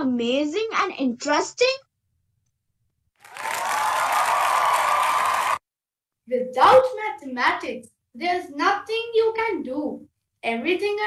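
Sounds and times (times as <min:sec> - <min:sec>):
applause and cheering: 0:03.2 - 0:05.6.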